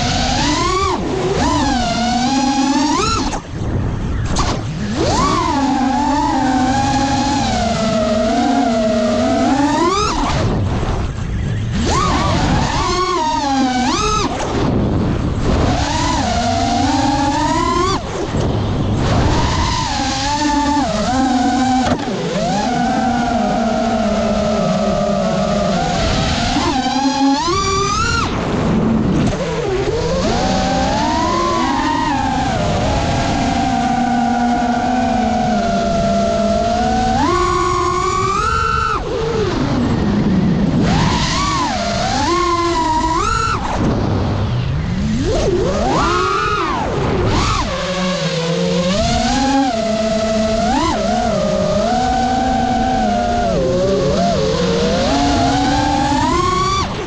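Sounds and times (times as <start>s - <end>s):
quadcopter motors whining: 0.0s - 57.0s.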